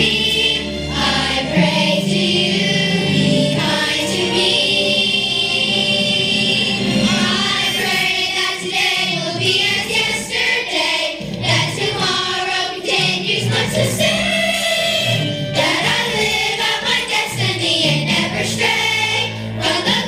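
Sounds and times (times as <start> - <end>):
children's choir singing: 0.0 - 20.0
instrumental accompaniment: 0.0 - 20.0.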